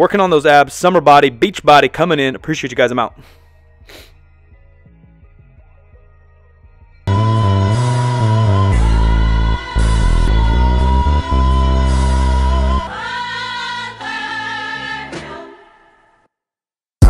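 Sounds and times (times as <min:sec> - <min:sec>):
heavy bass line: 0:07.1 - 0:12.9
song with sung vocal: 0:07.1 - 0:16.3.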